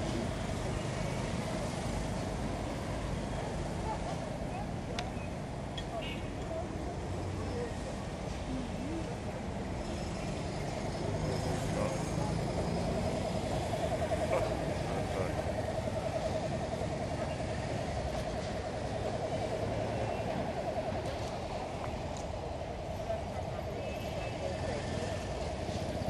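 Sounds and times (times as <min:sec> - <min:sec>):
steady engine drone: 0:00.0 - 0:05.8, 0:06.6 - 0:26.0
voices talking: 0:00.0 - 0:26.0
motorcycles and cars driving past: 0:09.7 - 0:21.9.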